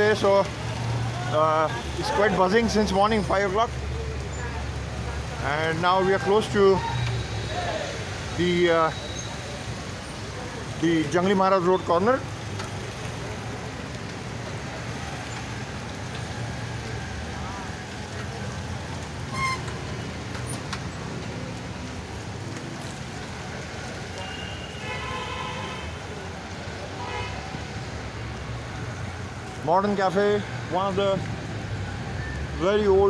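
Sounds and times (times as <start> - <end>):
city street traffic: 0.0 - 33.0.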